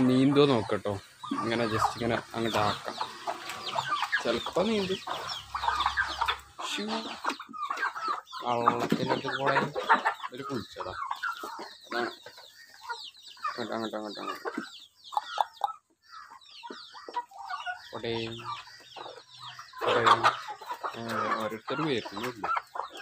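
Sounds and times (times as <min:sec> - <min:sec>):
chickens clucking: 0:00.0 - 0:23.0.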